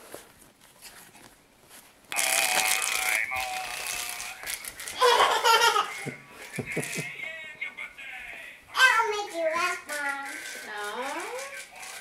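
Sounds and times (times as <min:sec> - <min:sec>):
buzzy laughing voice from speaker: 0:02.2 - 0:07.4.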